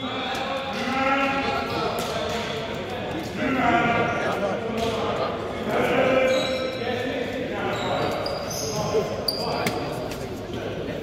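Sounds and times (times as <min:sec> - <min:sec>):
players' voices echoing: 0:00.0 - 0:11.0.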